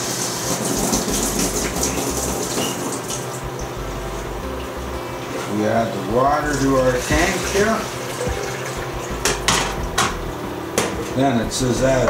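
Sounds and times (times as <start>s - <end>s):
water pouring into tank: 0.0s - 3.8s, 6.3s - 9.2s
sharp knocks: 9.2s - 11.2s.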